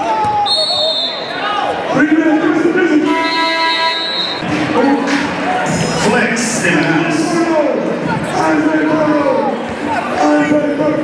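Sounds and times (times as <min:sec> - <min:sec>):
voices and crowd noise: 0:00.0 - 0:11.0
high squealing tones: 0:03.2 - 0:05.1.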